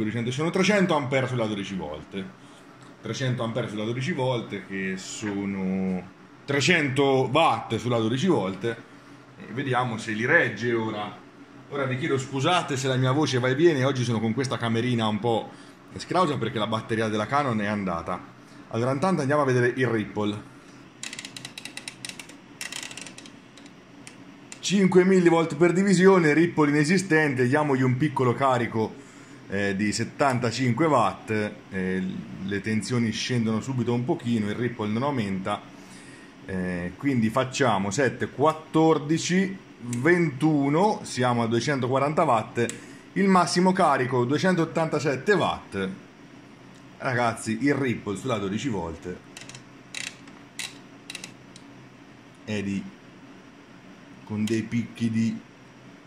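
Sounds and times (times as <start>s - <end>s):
steady low hum: 0.0s - 56.0s
rotary switch detent clicks: 21.0s - 24.7s, 49.3s - 51.7s.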